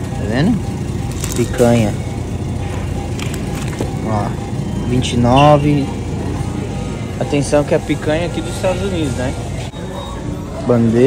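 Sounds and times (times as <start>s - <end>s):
plastic packaging crackling: 1.0s - 1.6s, 3.1s - 4.1s.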